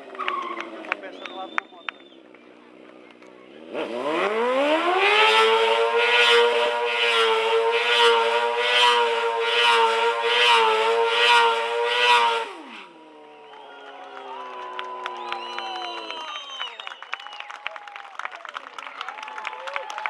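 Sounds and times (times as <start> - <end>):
motorcycle engine revving: 0.0 - 13.5.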